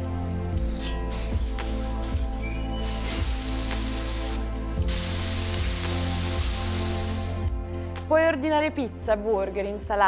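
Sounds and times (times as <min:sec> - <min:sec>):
background music with low beat: 0:00.0 - 0:10.0
burger sizzling on griddle: 0:02.8 - 0:07.4.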